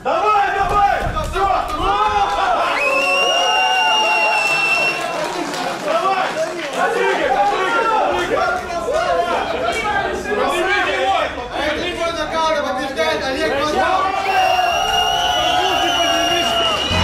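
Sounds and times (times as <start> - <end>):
crowd shouting and cheering: 0.0 - 11.4, 13.7 - 17.0.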